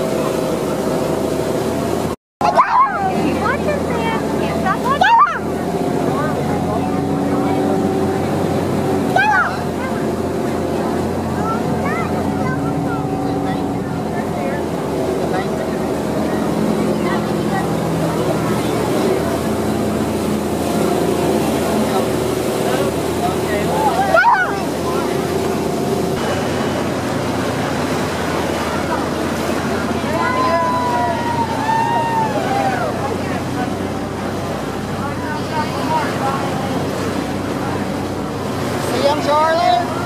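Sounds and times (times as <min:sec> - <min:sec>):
motorboat engine running: 0:00.0 - 0:40.0
water rushing in boat wake: 0:00.0 - 0:40.0.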